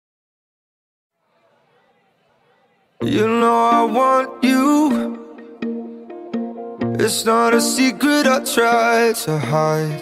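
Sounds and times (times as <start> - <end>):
music: 3.0 - 10.0.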